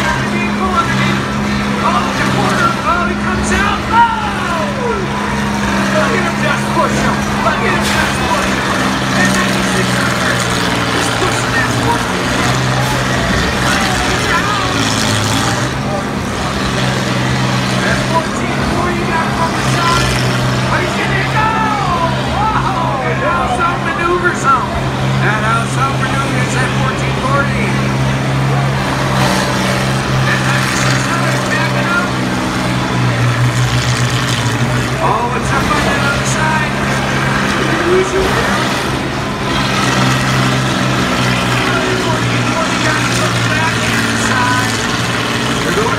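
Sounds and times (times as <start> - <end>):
crowd voices chattering: 0.0 - 45.9
diesel engines droning: 0.0 - 45.9.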